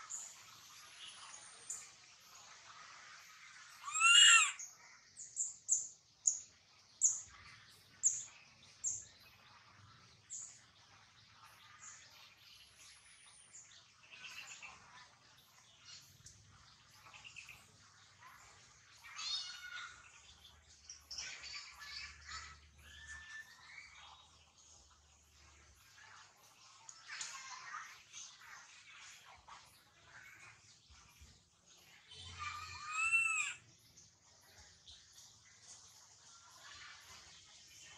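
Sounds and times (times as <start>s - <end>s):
faint animal calls: 3.7s - 4.7s, 32.4s - 33.6s
loud high animal call: 3.8s - 4.6s.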